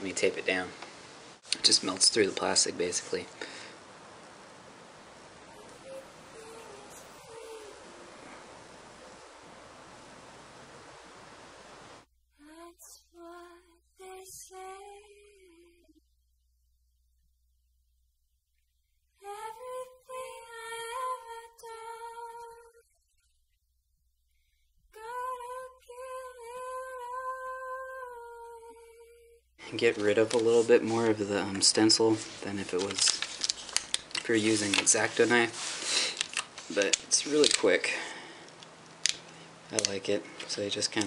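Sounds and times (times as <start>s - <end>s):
room hiss: 0.0s - 23.2s, 24.1s - 41.0s
high sung melody: 5.5s - 10.9s
plastic film click: 38.5s - 40.0s.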